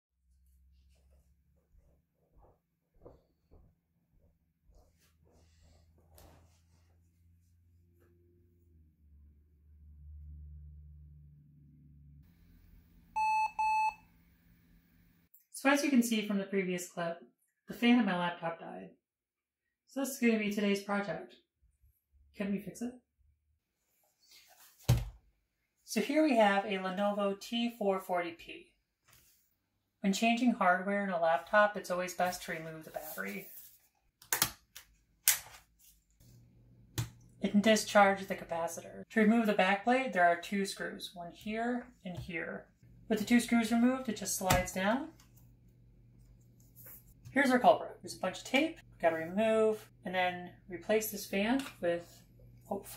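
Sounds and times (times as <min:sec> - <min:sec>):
short beeps: 0:13.2 - 0:14.0.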